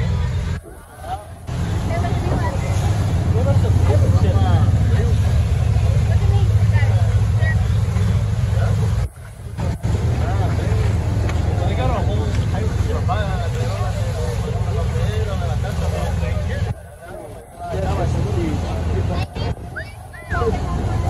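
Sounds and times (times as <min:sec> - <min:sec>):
boat engine rumble: 0:00.0 - 0:21.0
passengers chattering: 0:00.0 - 0:21.0
water: 0:00.0 - 0:21.0.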